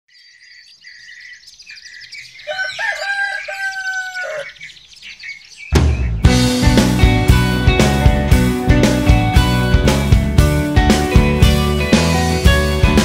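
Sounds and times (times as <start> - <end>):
small birds chirping: 0.1 - 6.5
rooster crowing: 2.4 - 4.6
rock band with guitars and drums: 5.8 - 13.0.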